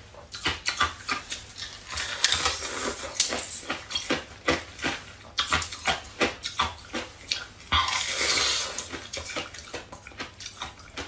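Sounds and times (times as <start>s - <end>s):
chewing and crunching ice: 0.3s - 11.0s.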